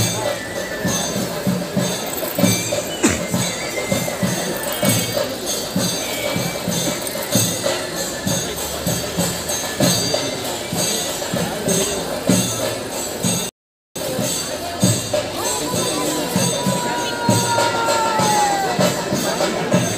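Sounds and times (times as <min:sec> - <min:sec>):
drums playing driving rhythm: 0:00.0 - 0:19.9
hand cymbals: 0:00.0 - 0:19.9.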